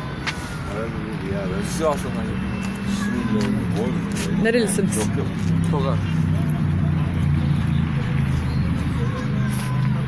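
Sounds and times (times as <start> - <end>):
vehicle engine running: 2.6 - 10.0.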